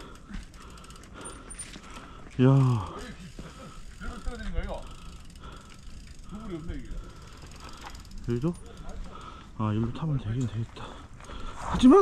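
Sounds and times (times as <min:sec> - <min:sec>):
bike freehub ratchet ticking: 0:00.0 - 0:09.6.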